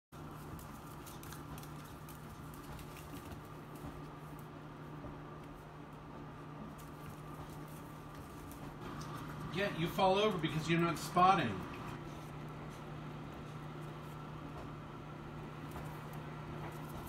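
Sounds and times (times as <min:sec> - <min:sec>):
steady low hum: 0:00.2 - 0:17.0.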